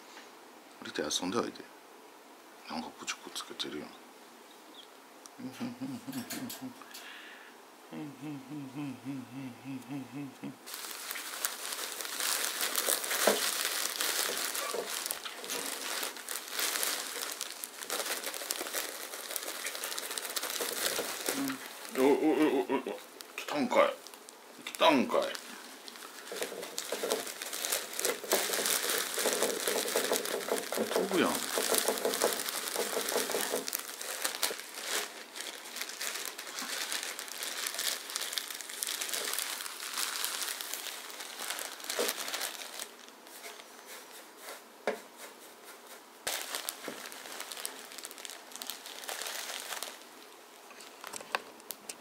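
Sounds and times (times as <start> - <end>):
shredded bedding rustling: 10.7 - 22.2, 25.1 - 50.2
plastic bag crinkling: 10.7 - 44.5, 46.2 - 51.7.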